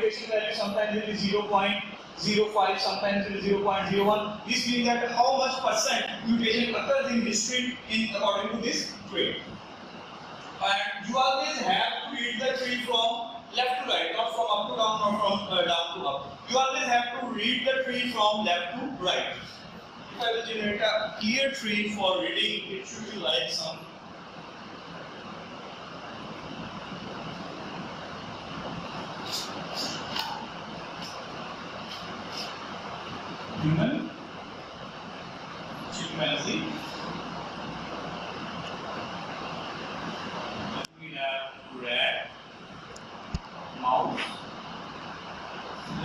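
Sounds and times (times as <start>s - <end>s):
room noise hum: 0.0s - 46.0s
cloth wiping a whiteboard: 28.8s - 33.6s.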